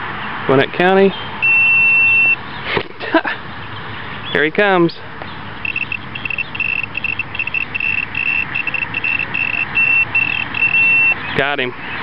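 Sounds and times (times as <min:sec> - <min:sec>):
laser speed gun beeps: 0:05.6 - 0:11.2.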